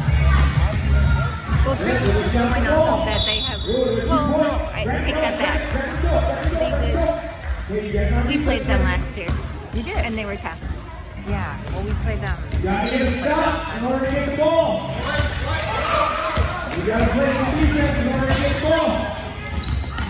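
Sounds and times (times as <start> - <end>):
sneakers squeaking: 0.0 - 7.6, 8.4 - 20.0.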